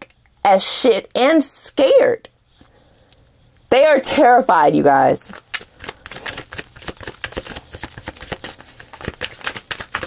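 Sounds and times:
cards being shuffled: 5.3s - 10.0s.

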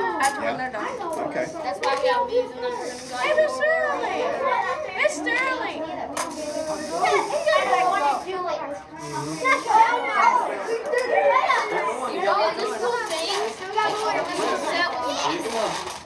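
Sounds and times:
children chattering: 0.0s - 16.0s.

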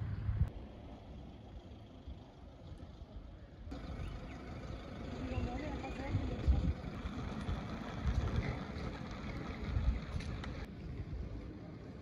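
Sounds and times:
outdoor background noise: 0.0s - 12.0s
wind buffeting microphone: 5.3s - 11.9s.

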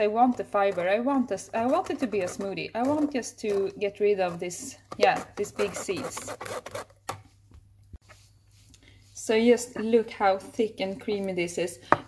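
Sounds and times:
spoon scraping puree through sieve: 0.0s - 7.0s.

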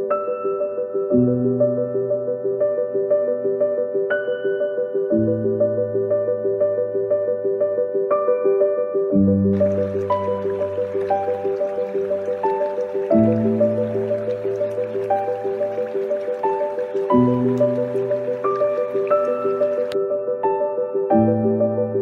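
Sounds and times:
soft solo piano music: 0.0s - 22.0s
creek flowing over rocks: 9.6s - 20.0s.

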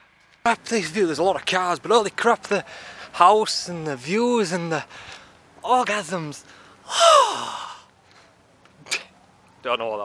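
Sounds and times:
man's breathy sigh: 6.5s - 7.9s.

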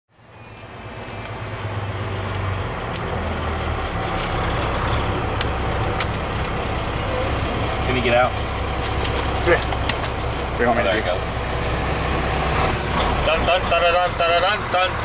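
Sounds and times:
truck engine running: 0.1s - 15.0s.

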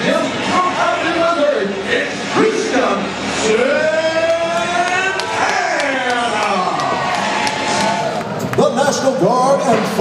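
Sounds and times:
man announcing over loudspeaker: 0.0s - 7.0s, 8.4s - 10.0s.

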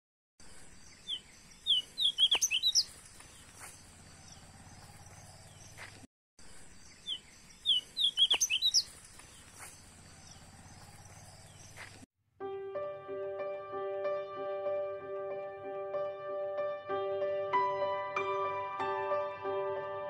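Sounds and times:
bird chirps: 0.4s - 12.0s.

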